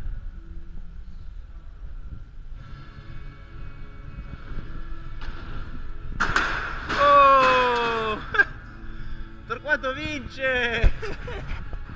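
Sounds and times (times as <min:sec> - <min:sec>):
bike tyres rolling on ramps: 0:02.3 - 0:08.4.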